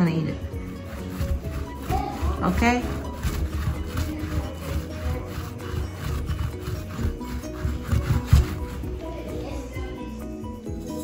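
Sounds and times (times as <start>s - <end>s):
background music: 0.0s - 11.0s
modelling clay rubbing on wooden table: 0.5s - 9.6s.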